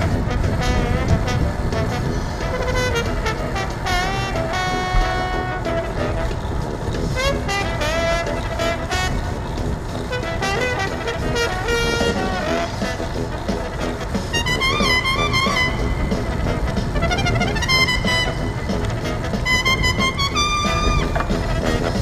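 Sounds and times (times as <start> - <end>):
music with gliding melody: 0.0 - 22.0
wind rumble on microphone: 0.0 - 22.0.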